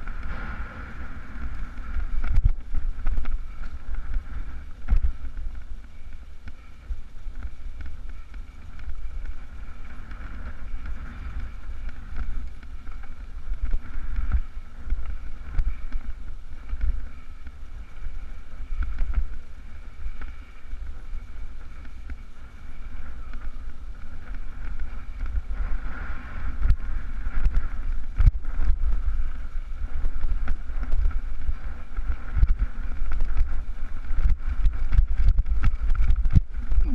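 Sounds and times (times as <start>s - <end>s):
rumble and rattle over rough ground: 0.0s - 36.9s
wind buffeting microphone: 0.0s - 36.9s.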